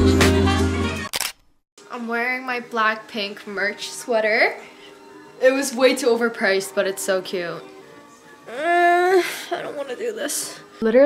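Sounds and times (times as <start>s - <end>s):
background music: 0.0s - 1.1s, 1.8s - 11.0s
woman speaking: 9.6s - 11.0s.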